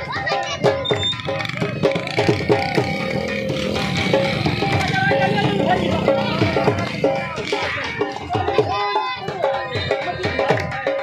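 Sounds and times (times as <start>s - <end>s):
drum beats: 0.0s - 11.0s.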